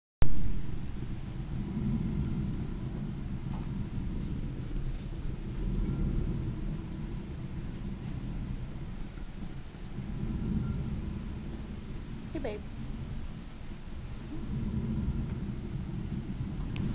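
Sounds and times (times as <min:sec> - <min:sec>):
mill machinery rumbling: 0:00.2 - 0:16.9.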